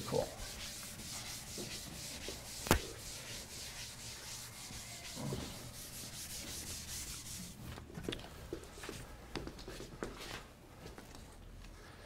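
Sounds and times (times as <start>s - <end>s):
scratchy rubbing on blackboard: 0.0s - 7.6s.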